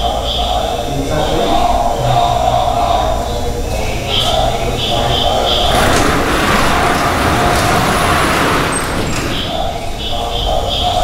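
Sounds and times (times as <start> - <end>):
metal gate scraping shut: 3.8 - 10.1.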